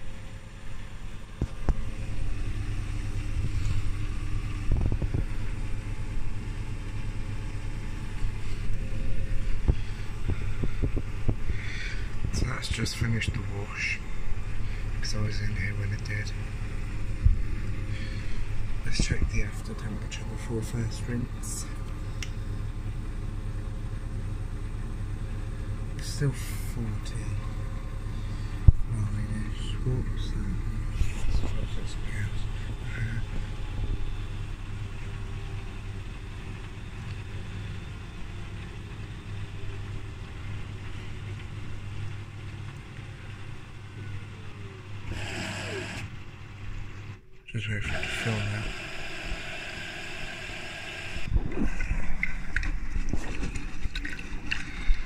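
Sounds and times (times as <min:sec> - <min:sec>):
washing machine drum spinning: 0:00.0 - 0:19.7
washing machine drum humming: 0:00.0 - 0:55.0
water filling hiss: 0:47.9 - 0:51.8.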